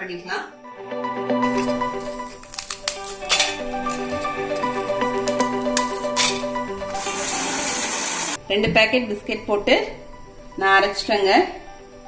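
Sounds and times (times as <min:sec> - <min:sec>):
background music: 0:00.0 - 0:12.0
mixer grinder running: 0:03.3 - 0:08.4.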